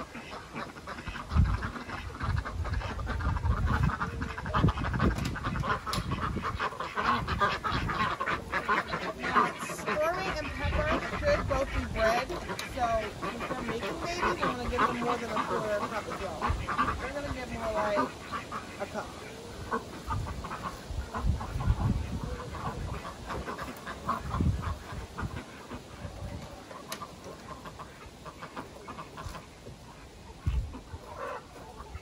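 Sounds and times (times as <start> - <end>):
ducks quacking: 0.0 - 32.0.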